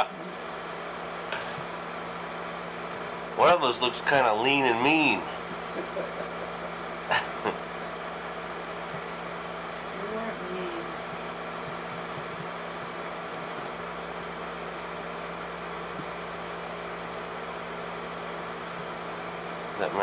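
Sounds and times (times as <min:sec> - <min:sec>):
film projector humming: 0:00.0 - 0:20.0.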